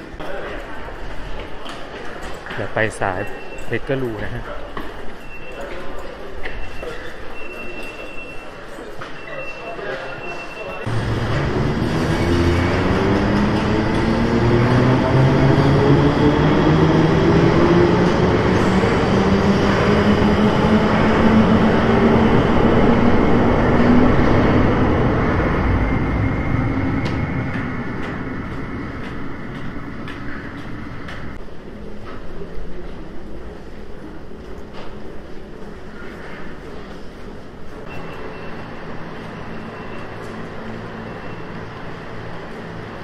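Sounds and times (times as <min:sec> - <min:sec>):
train rumbling: 0:10.2 - 0:43.0.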